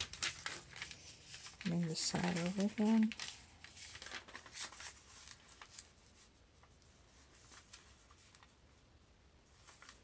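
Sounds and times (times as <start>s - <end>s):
paper rustling and creasing: 0.0s - 8.8s, 9.4s - 10.0s.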